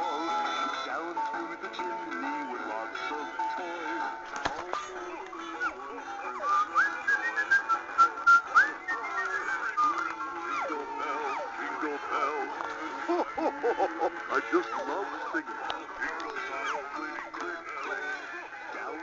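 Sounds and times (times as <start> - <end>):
tinny music from small speaker: 0.0 - 19.0
whistled melody: 5.4 - 11.6.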